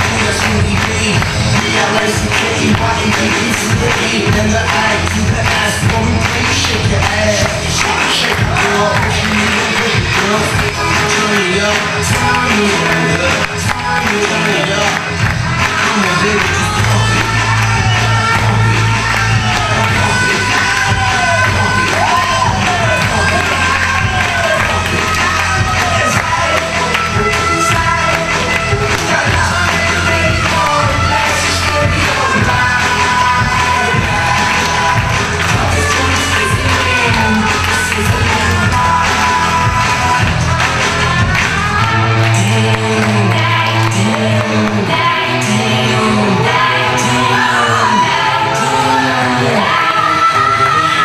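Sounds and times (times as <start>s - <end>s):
pop music with singing: 0.0s - 51.0s.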